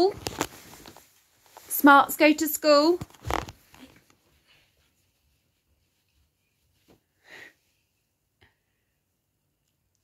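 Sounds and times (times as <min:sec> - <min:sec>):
faint breath: 0:07.1 - 0:09.1.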